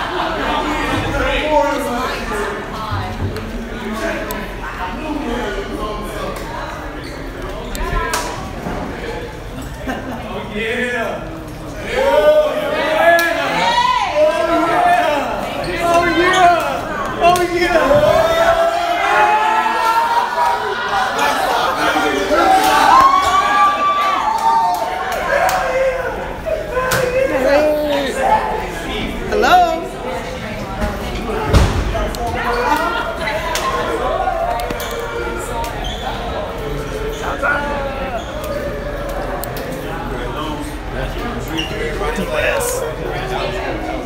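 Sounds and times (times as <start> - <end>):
people talking and calling out: 0.0 - 44.0.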